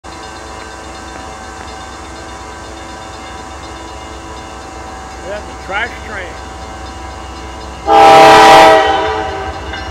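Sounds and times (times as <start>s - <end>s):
distant freight train: 0.0s - 9.9s
train horn held tones: 7.8s - 9.9s.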